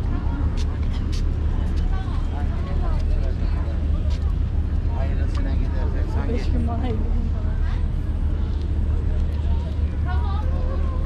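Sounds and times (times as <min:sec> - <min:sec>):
city traffic rumble: 0:00.0 - 0:11.0
passersby talking: 0:00.0 - 0:11.0.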